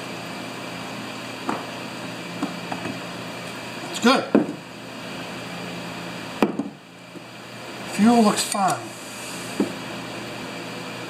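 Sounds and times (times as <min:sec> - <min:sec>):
shop heater humming: 0:00.0 - 0:11.0.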